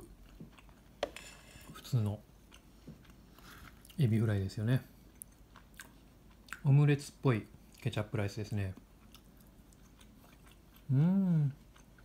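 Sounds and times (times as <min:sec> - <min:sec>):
person chewing food: 0:00.0 - 0:04.1, 0:04.8 - 0:06.7, 0:08.7 - 0:12.0.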